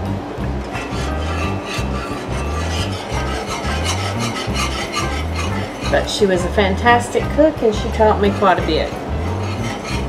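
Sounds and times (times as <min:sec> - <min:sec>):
background music with bass: 0:00.0 - 0:10.0
whisk scraping in skillet: 0:00.6 - 0:10.0.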